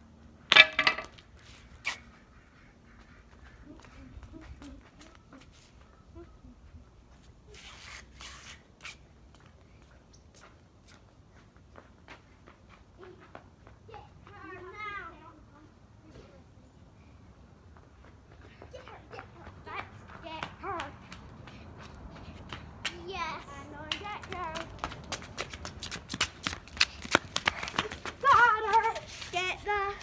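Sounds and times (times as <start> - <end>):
light footsteps: 17.6 - 30.0.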